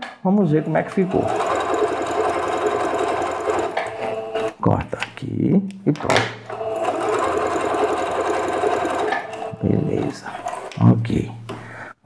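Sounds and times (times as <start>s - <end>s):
sewing machine stitching fabric: 0.0s - 4.6s, 6.2s - 10.8s.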